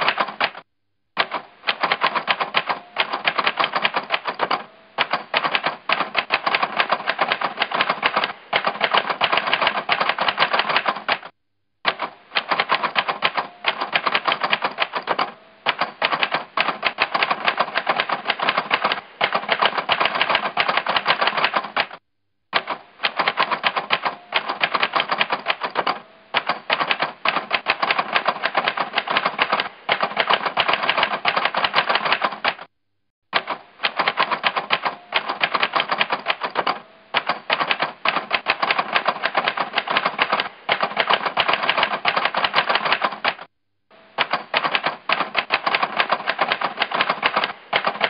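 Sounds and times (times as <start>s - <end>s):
typewriter keystrokes clattering: 0.0s - 0.6s, 1.2s - 11.3s, 11.9s - 22.0s, 22.6s - 32.7s, 33.4s - 43.5s, 44.2s - 48.0s.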